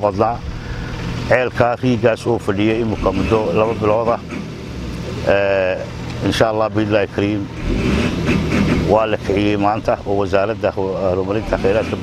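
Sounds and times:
low engine hum: 0.0s - 12.0s
person speaking: 1.2s - 4.2s, 8.8s - 12.0s.

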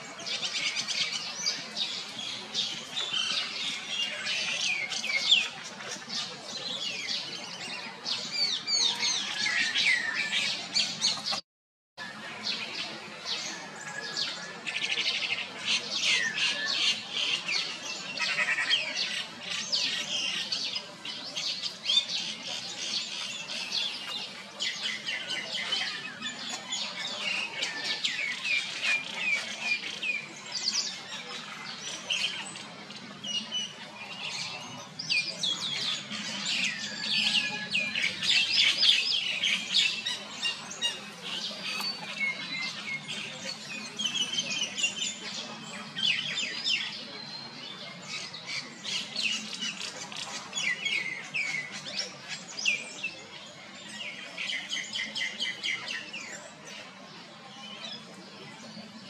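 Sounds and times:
birds chirping and squawking: 0.0s - 11.4s, 12.0s - 59.0s.

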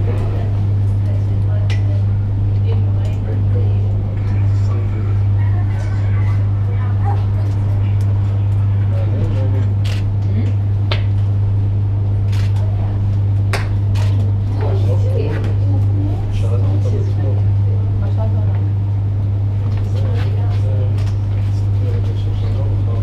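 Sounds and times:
faint voices: 0.0s - 10.8s
loud steady low hum: 0.0s - 23.0s.

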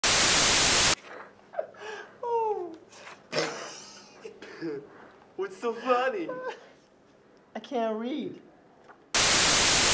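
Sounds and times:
tv static hiss: 0.0s - 1.0s, 9.1s - 9.9s.

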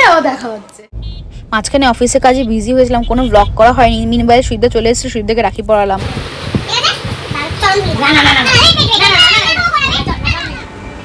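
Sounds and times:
high-pitched talking: 6.7s - 10.7s.

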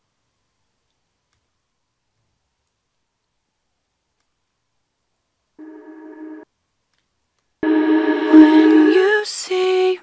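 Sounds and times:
loud sustained vocal swell: 7.6s - 9.3s
reversed reverb vocal: 7.6s - 9.3s
faint held vocal tone: 7.6s - 10.0s.

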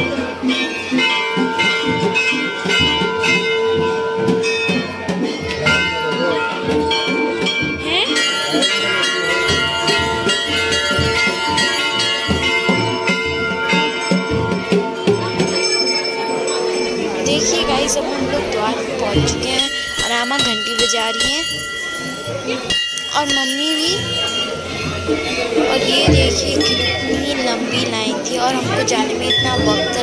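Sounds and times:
crowd voices: 0.0s - 30.0s
temple bells ringing: 0.0s - 30.0s.

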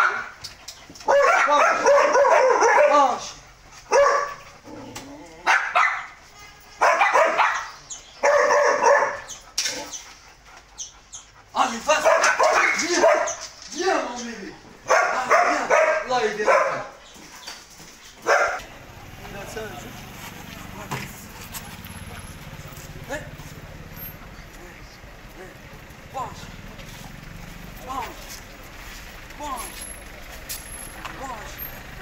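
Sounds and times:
dog barking: 0.0s - 0.4s, 1.0s - 4.5s, 5.4s - 10.0s, 11.9s - 13.4s, 14.8s - 17.0s, 18.2s - 18.7s.

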